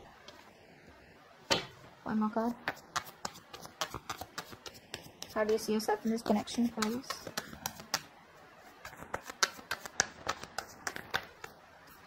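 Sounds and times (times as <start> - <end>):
cards clicking and flicking: 8.9 - 11.6.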